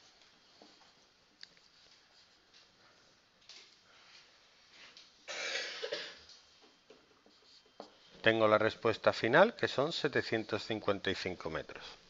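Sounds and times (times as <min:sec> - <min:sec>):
person coughing: 0:05.3 - 0:06.2.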